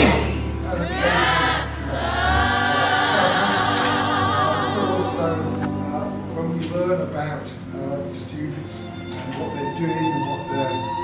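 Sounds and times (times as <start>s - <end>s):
choir singing long notes: 0.0s - 5.8s.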